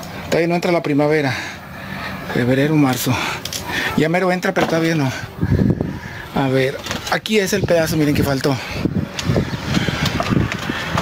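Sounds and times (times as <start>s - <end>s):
wind buffeting microphone: 5.0s - 11.0s.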